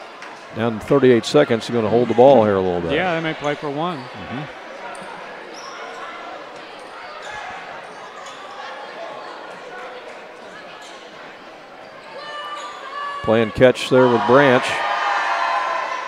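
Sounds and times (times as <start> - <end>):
murmur of crowd chatter: 0.0 - 16.0.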